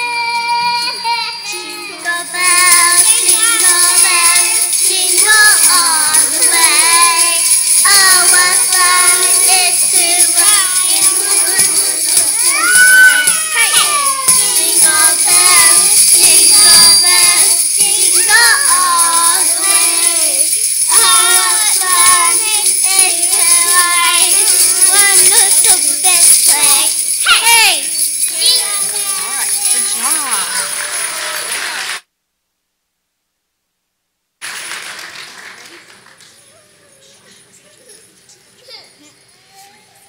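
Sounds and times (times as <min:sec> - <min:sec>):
young children singing: 0:00.0 - 0:27.2, 0:27.8 - 0:31.6
sleigh bells ringing: 0:00.4 - 0:32.0.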